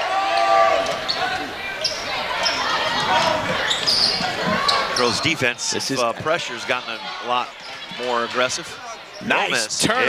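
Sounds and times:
crowd of voices in gym: 0.0s - 10.0s.

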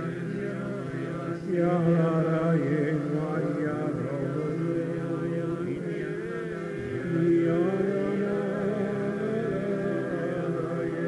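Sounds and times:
congregation singing a chant: 0.0s - 11.0s.

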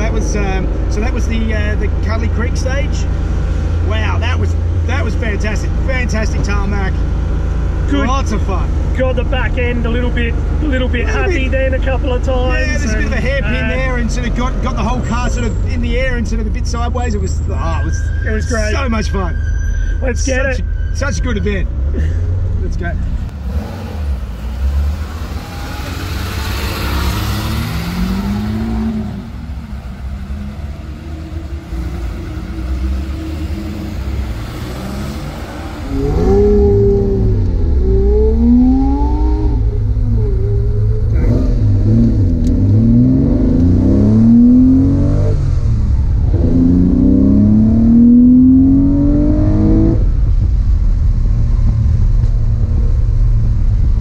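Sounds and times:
car engine revving: 21.6s - 54.0s.

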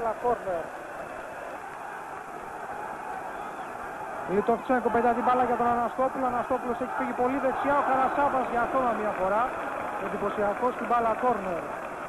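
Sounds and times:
stadium crowd voices: 0.0s - 12.0s.

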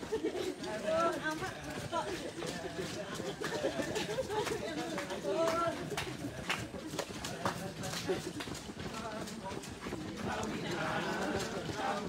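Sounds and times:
footsteps jogging on pavement: 0.0s - 12.0s.

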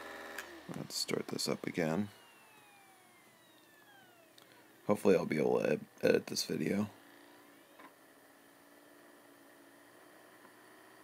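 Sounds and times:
hard drive spinning down whine: 0.0s - 11.0s.

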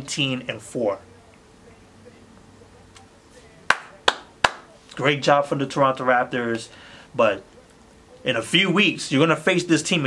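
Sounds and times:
hand claps: 3.7s - 4.7s.

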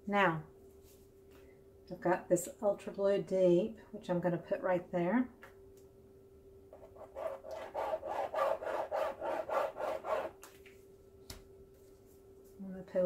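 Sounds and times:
paint bottle scratching on canvas: 6.8s - 10.4s.

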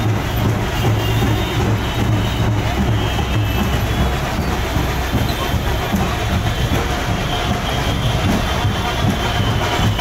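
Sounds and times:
diesel vehicles idling: 0.0s - 10.0s
heavy road traffic rumble: 0.0s - 10.0s.

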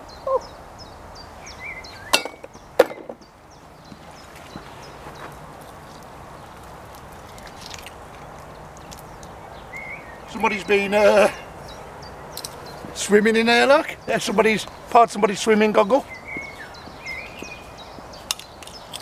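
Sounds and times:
small bird chirping: 0.0s - 15.0s, 15.8s - 19.0s
faint outdoor ambience: 0.0s - 19.0s.

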